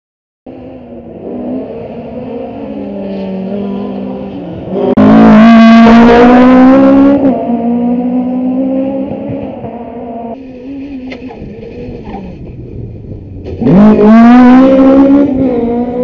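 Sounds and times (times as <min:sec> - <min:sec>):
rally car engine passing: 0:00.5 - 0:16.0.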